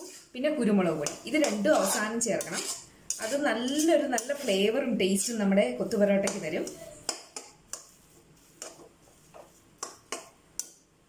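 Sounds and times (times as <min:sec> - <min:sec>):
metal spatula scraping metal pan: 0:01.0 - 0:07.1.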